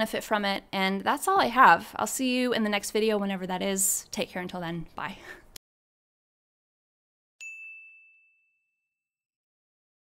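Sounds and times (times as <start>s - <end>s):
high-pitched notification bell ding: 7.4s - 8.9s.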